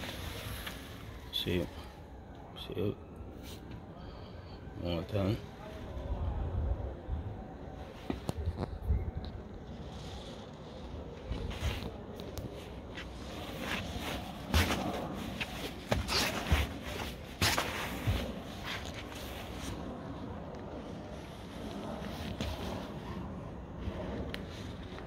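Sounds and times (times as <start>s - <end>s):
outdoor background noise: 0.0s - 25.0s.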